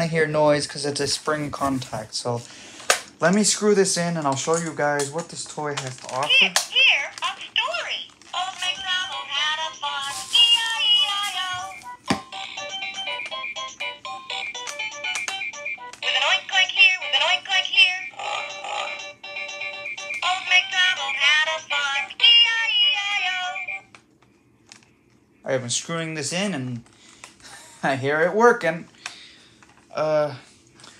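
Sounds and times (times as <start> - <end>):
tinny children's song from toy speaker: 8.3 - 23.8.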